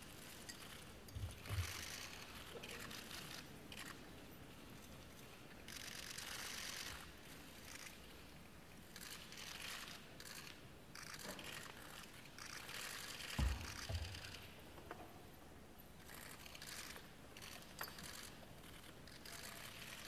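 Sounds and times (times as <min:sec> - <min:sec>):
hushed crowd rustling and shuffling: 0:00.0 - 0:20.0.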